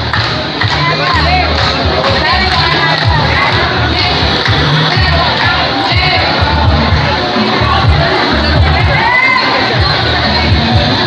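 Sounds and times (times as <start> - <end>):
crowd cheering and shouting: 0.0 - 11.0
dance music with bass beat: 0.0 - 11.0.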